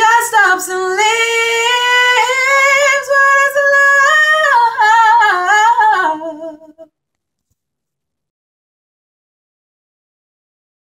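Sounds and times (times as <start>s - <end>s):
woman singing wordless run: 0.0s - 6.9s.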